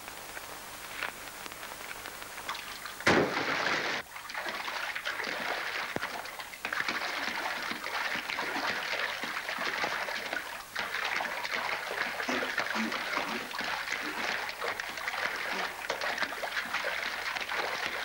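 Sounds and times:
river water splashing: 2.5 - 18.0.

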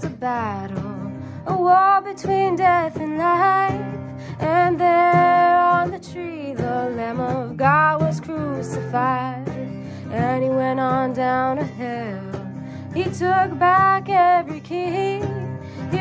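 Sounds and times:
strummed acoustic guitar: 0.0 - 16.0
woman singing: 0.0 - 16.0.

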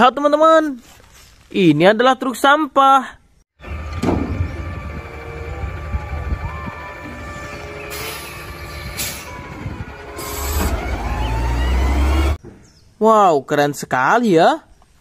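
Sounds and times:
garbage truck engine: 3.6 - 12.4
hydraulic arm whining: 3.6 - 12.4.

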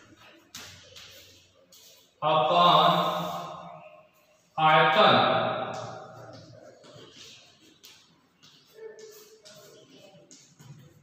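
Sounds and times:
man chanting a long tone: 2.2 - 3.5.

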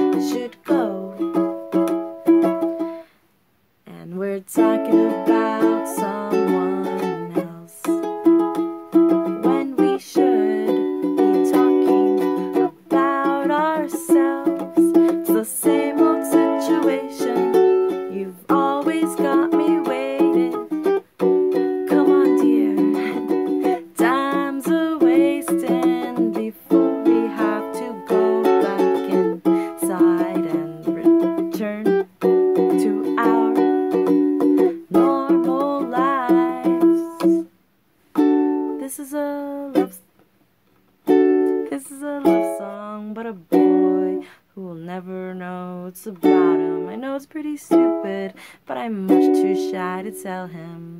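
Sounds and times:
woman singing: 0.0 - 2.5, 3.9 - 8.1, 9.1 - 37.5, 38.5 - 40.1, 41.4 - 50.9
ukulele strumming chords: 0.0 - 3.0, 4.1 - 40.1, 40.9 - 50.9.

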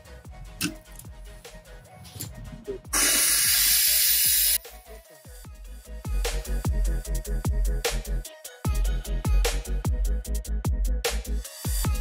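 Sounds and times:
quiet electronic music: 0.0 - 12.0
air and water hissing from valve: 2.9 - 4.6.

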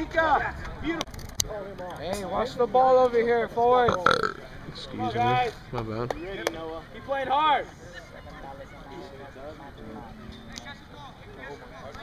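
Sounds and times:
indistinct chatter of voices: 0.0 - 12.0.

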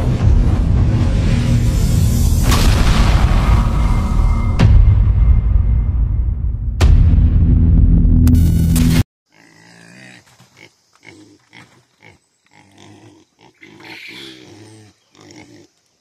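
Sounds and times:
loud intro music: 0.0 - 9.0
pigs grunting: 9.3 - 15.8.

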